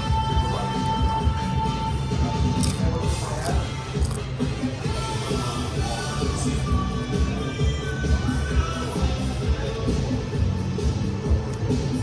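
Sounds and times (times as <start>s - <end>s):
music with steady beat and held tone: 0.0s - 12.0s.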